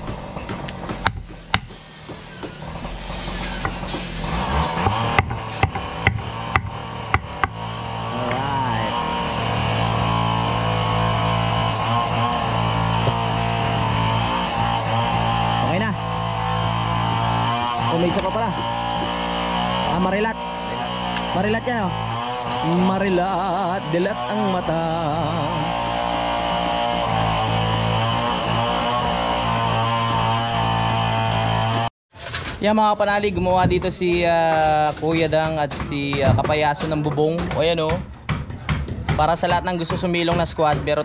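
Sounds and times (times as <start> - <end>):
knife chopping on wooden board: 0.0 - 2.6, 3.6 - 7.6, 34.5 - 41.0
power cutting tool droning: 0.0 - 31.9.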